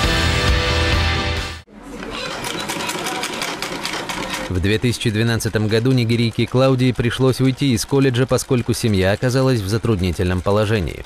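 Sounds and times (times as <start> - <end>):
bumper music: 0.0 - 1.6
sewing machine stitching: 1.9 - 11.0.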